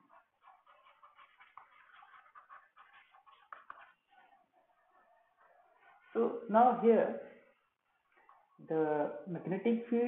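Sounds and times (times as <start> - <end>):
stylus scratching on pen tablet: 0.0 - 6.9.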